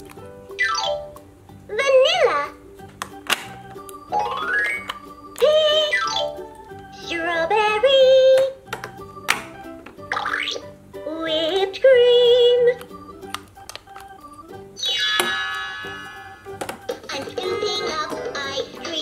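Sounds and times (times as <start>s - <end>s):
toy speaker playing children's tune: 0.5s - 19.0s.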